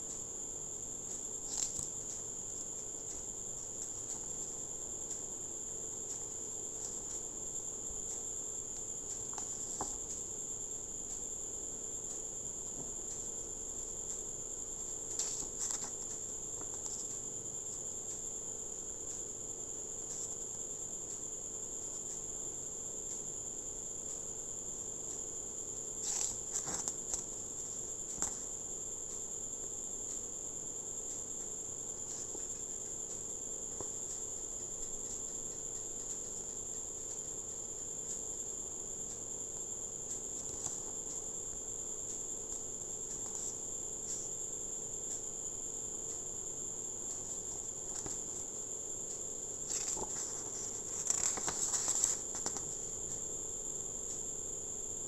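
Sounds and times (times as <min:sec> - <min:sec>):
paper rustling and clicking: 0:01.4 - 0:02.2, 0:09.2 - 0:10.2, 0:15.0 - 0:17.2, 0:26.0 - 0:28.5, 0:40.3 - 0:41.0, 0:47.1 - 0:48.6, 0:49.6 - 0:53.2.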